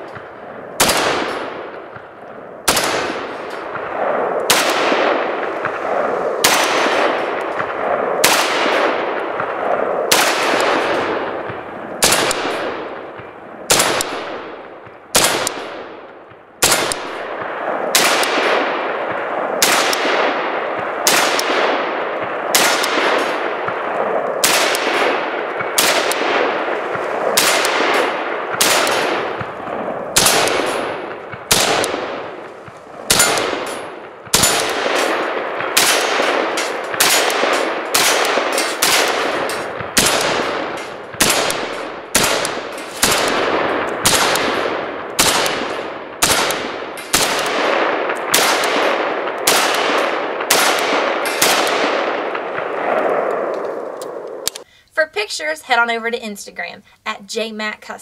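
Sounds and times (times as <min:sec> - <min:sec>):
rifle shots with echo: 0:00.0 - 0:54.6.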